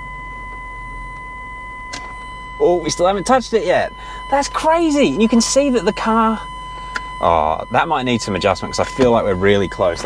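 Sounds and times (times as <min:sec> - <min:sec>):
parking sensor warning tone: 0:00.0 - 0:10.0.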